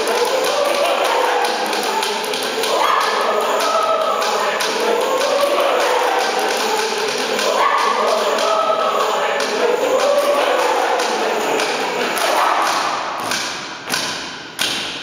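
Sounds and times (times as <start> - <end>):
mixed choir singing: 0.0 - 13.3
claps and stamps: 11.0 - 15.0.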